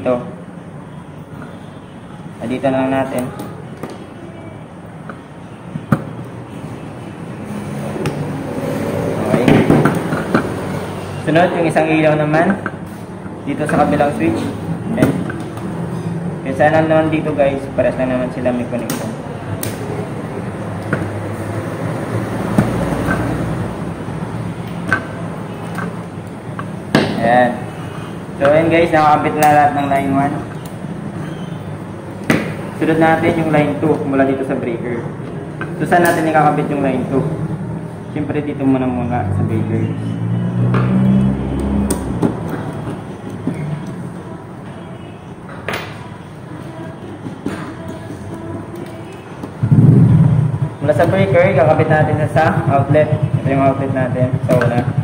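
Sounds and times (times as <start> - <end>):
low background noise: 0.0 - 55.0.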